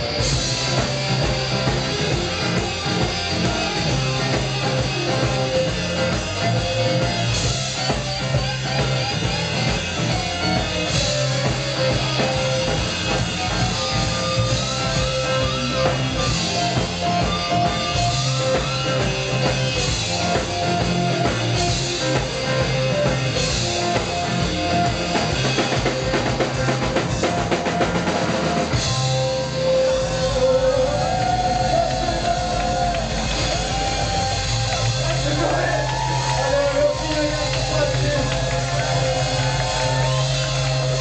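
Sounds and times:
drums: 0.0s - 41.0s
guitars: 0.0s - 41.0s
live rock band playing: 0.0s - 41.0s.

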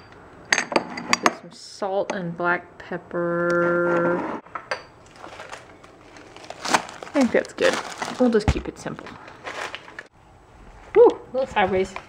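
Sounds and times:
handling rustle: 5.0s - 10.1s.

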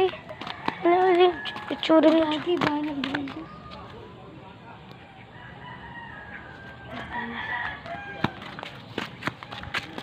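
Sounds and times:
rooster crowing: 0.3s - 1.9s, 5.0s - 8.6s.

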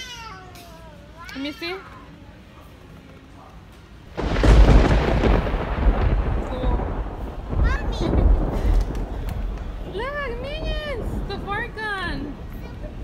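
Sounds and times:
thunderclap crack: 4.1s - 12.6s
deep rolling thunder rumble: 4.1s - 13.0s.

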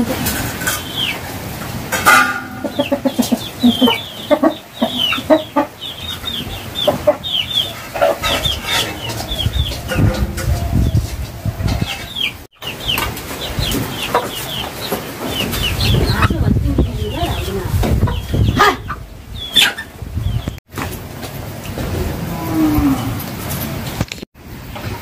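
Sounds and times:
chickens clucking and peeping: 0.0s - 24.0s.

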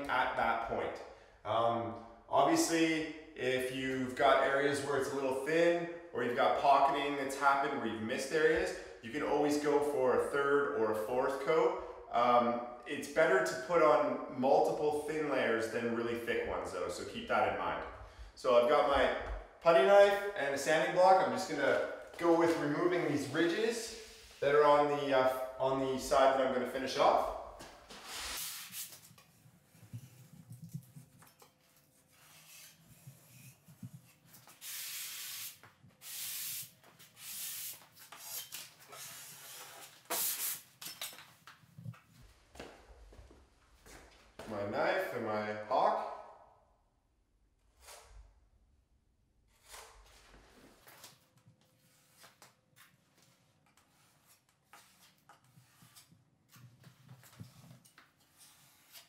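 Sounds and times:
putty knife scraping drywall: 27.9s - 34.6s, 37.0s - 40.6s, 49.5s - 59.0s
sanding block rubbing: 53.8s - 56.1s, 58.4s - 59.0s.

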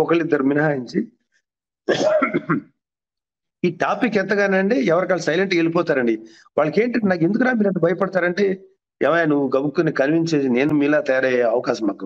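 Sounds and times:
man clearing throat: 1.9s - 2.8s.

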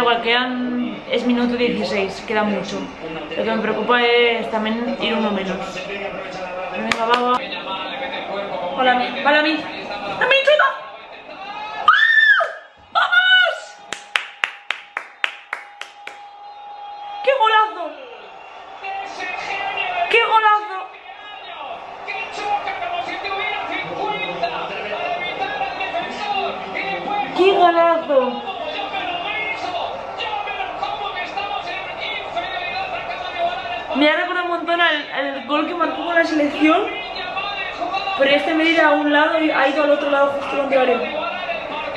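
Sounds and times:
muffled television commentary: 0.0s - 41.9s
hands clapping: 6.8s - 7.4s, 13.8s - 16.4s
woman screaming: 11.9s - 13.7s.

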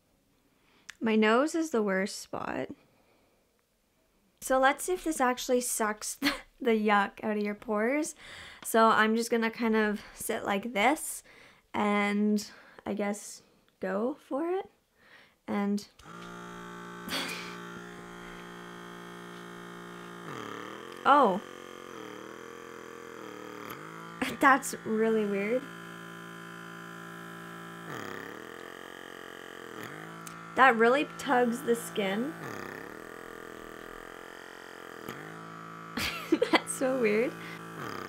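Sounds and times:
suction motor buzzing hum: 4.4s - 10.5s, 15.6s - 38.0s.

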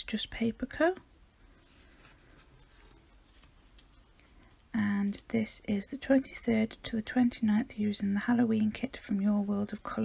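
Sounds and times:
paper page turning: 1.6s - 3.9s.

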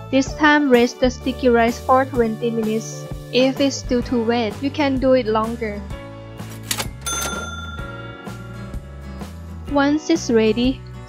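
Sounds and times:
background music: 0.0s - 11.0s
bright ringing ding: 7.0s - 9.2s.

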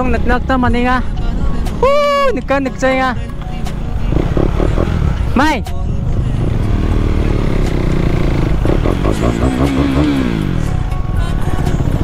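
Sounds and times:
motorcycle engine running: 4.0s - 5.4s, 6.2s - 10.9s.

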